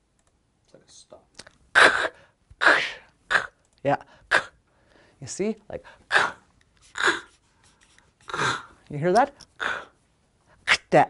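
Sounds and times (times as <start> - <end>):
woman making breathy consonant: 9.5 - 10.0.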